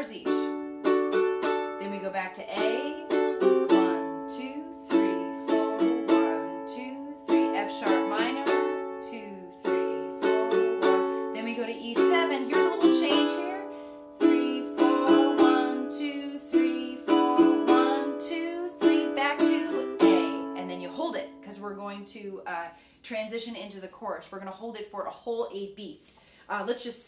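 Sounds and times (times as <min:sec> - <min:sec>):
ukulele strumming chords: 0:00.0 - 0:21.8.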